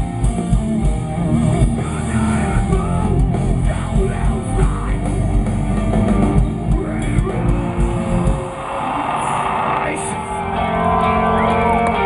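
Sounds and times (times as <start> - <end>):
drum kit: 0.0 - 8.9
bass guitar: 0.0 - 12.0
distorted electric guitars: 0.0 - 12.0.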